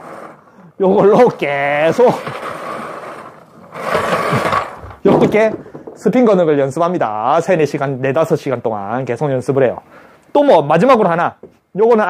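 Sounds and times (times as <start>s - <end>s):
bowling ball spinning with scraping whir: 0.0s - 5.1s.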